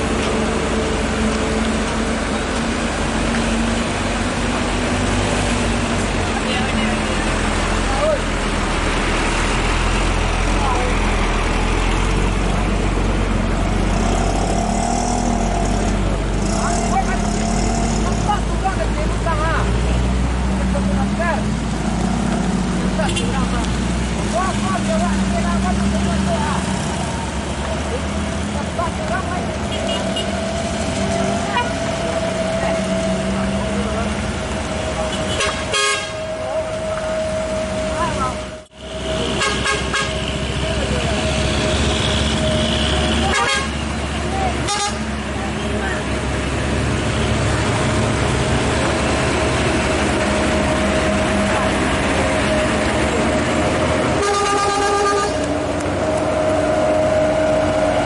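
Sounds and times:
vehicles idling and passing: 0.0 - 58.0
people talking: 6.2 - 8.4, 10.4 - 11.4, 16.4 - 21.5, 22.8 - 30.0, 31.0 - 35.6, 36.2 - 46.5, 51.0 - 53.8
vehicle horn honking: 29.7 - 30.3, 35.1 - 36.3, 39.2 - 40.3, 42.0 - 43.8, 44.7 - 45.0, 54.2 - 55.4.

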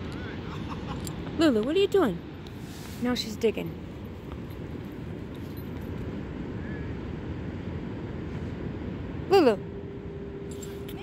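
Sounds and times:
surf and wind rushing: 0.0 - 10.5.

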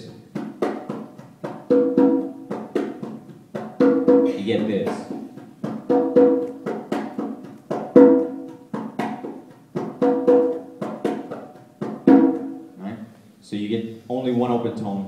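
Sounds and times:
conga drums played by hand: 0.0 - 12.8.

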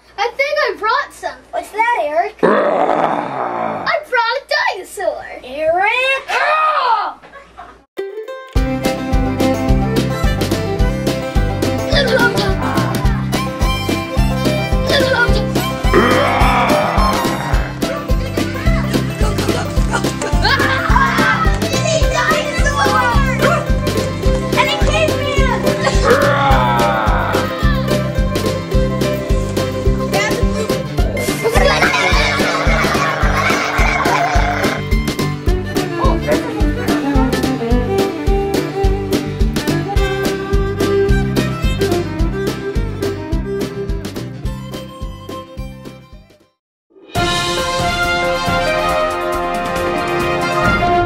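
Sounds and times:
loud growl: 2.4 - 3.9, 15.9 - 18.0, 25.6 - 27.7, 31.6 - 34.8
children yelling: 6.3 - 7.2, 15.9 - 17.8, 20.8 - 23.6, 24.8 - 27.9, 31.5 - 34.8
background music with a steady beat: 8.5 - 32.4, 34.8 - 46.3, 47.2 - 51.0.

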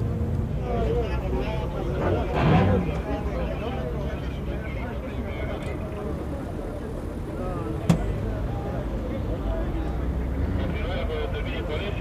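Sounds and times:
traffic rumble: 0.0 - 12.0.

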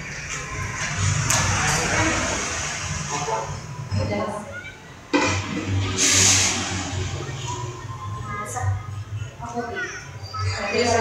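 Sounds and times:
wall fan humming: 0.0 - 11.0
loud rushing hiss: 5.2 - 7.4.

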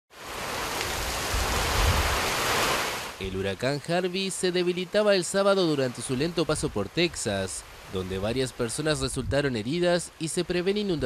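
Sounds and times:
heavy rain rushing: 0.1 - 11.0
wind gusts on microphone: 0.3 - 3.2, 6.4 - 9.7.

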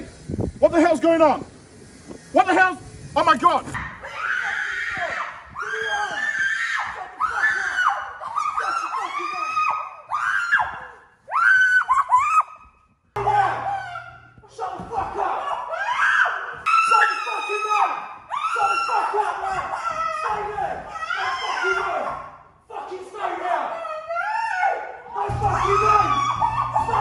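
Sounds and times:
woman screaming: 25.4 - 27.0.

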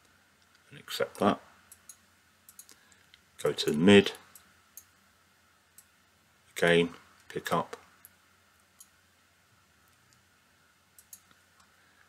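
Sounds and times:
computer mouse clicks: 1.7 - 3.2, 11.0 - 11.7.

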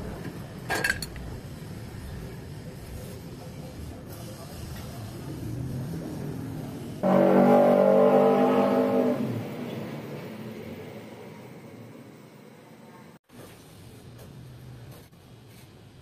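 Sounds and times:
horn sounding: 7.0 - 9.4.

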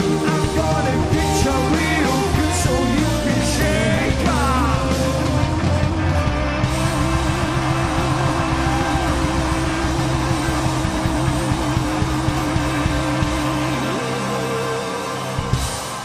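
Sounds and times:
crowd noise: 0.0 - 16.0
distorted rock chord: 0.0 - 16.0
low drone: 4.5 - 16.0.

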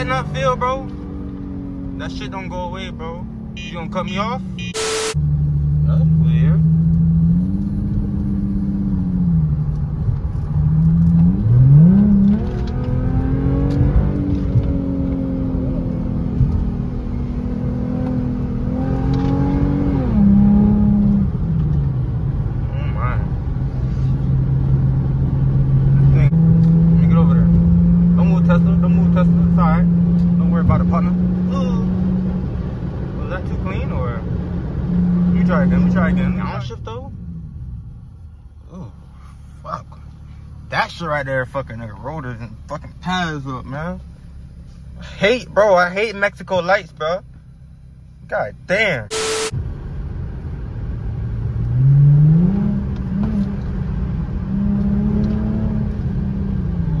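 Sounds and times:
car engine revving: 0.0 - 39.1, 49.1 - 57.0.

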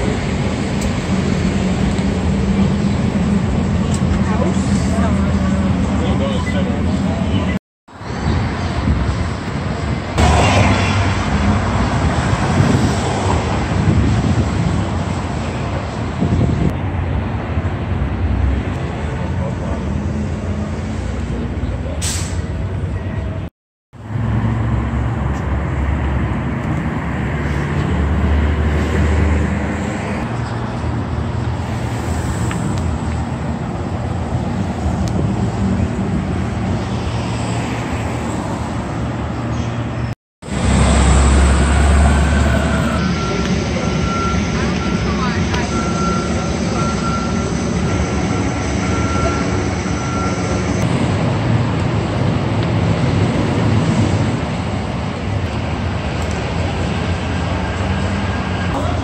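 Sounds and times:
cars and heavy vehicles passing: 0.0 - 59.0.

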